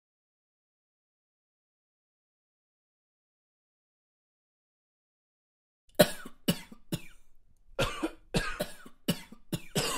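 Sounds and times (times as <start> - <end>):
person coughing: 6.0 - 7.2, 7.8 - 9.9.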